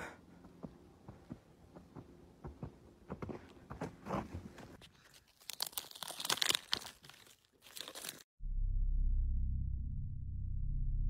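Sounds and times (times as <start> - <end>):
leaf litter crunching and rustling: 5.0 - 8.3.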